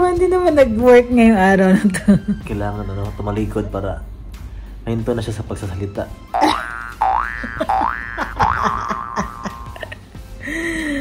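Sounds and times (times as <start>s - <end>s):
background music: 0.0s - 11.0s
cartoon boing effect: 6.4s - 9.8s.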